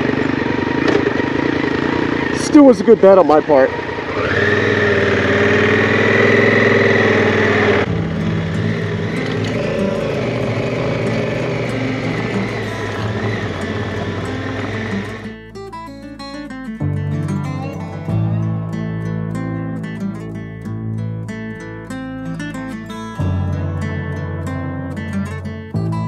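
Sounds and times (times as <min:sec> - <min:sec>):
motorcycle engine running: 0:00.0 - 0:15.5
acoustic guitar music: 0:00.0 - 0:26.0.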